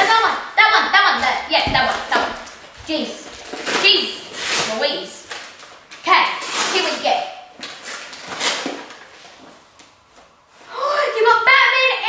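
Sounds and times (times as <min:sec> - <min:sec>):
gift-wrapping paper crinkling: 0:02.0 - 0:10.0
children talking: 0:10.7 - 0:12.0.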